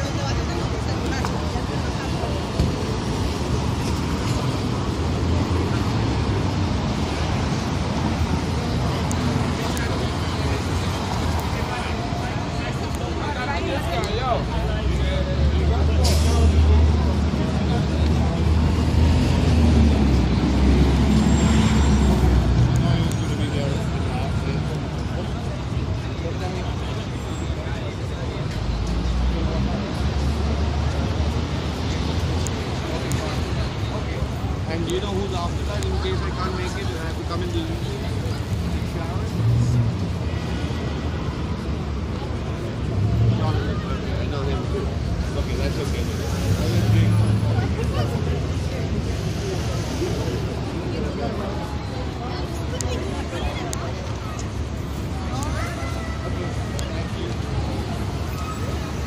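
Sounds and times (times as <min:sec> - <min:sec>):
passers-by talking: 0:00.0 - 0:59.0
traffic engine rumble: 0:00.0 - 0:59.0.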